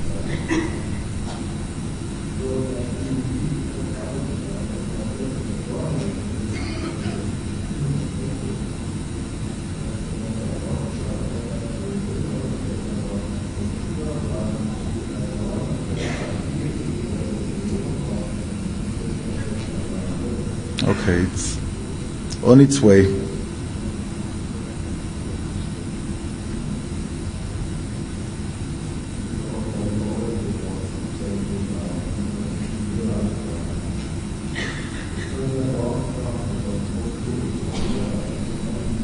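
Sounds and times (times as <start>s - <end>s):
faint indistinct voices: 0.0s - 39.0s
hall room rumble: 0.0s - 39.0s.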